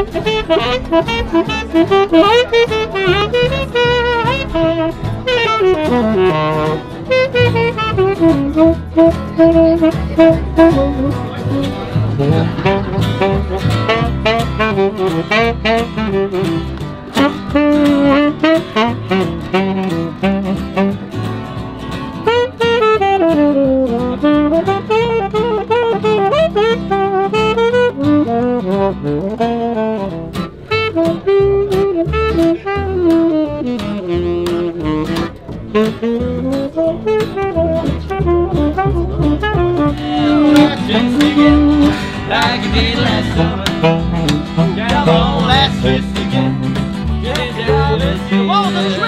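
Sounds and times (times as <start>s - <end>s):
acoustic guitar: 0.0s - 49.0s
plucked double bass: 0.0s - 49.0s
saxophone melody: 0.0s - 49.0s.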